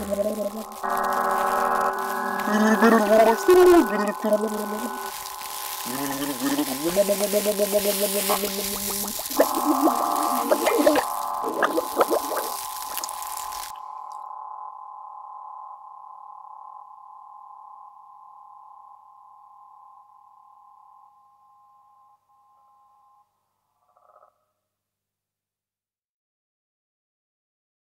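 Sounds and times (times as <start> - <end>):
electronic hiss and clicks: 0.0 - 14.2
steady high electronic tones: 0.0 - 16.9.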